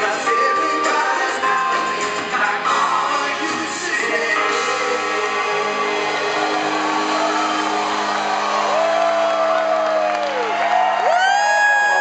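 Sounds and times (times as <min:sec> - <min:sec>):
man singing long notes: 0:00.0 - 0:07.6
live band music: 0:00.0 - 0:08.9
crowd whooping: 0:05.7 - 0:12.0.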